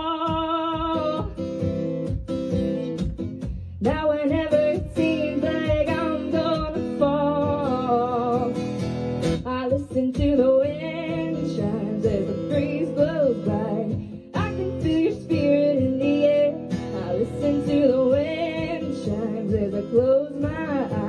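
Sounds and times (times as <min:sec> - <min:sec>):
acoustic guitars strummed: 0:00.0 - 0:21.0
woman singing folk ballad: 0:00.0 - 0:21.0.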